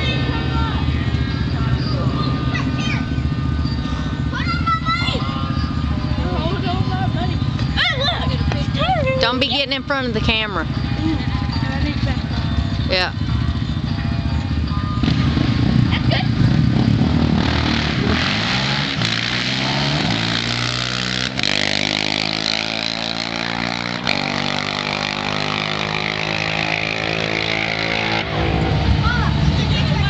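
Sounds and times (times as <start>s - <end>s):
deep engine rumble: 0.0s - 30.0s
quad engine accelerating: 0.0s - 30.0s
engine gear upshifts: 6.4s - 30.0s.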